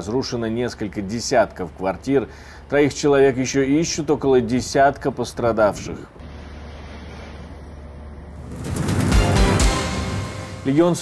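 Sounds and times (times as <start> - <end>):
outdoor ambient hum: 0.0 - 11.0
rising whoosh: 8.4 - 10.7
short music sting: 8.4 - 11.0.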